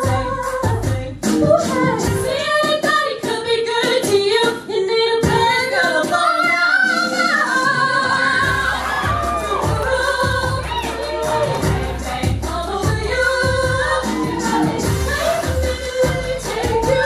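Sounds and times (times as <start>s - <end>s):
choir singing in harmony: 4.8s - 17.0s
low pulsing beat: 8.4s - 17.0s.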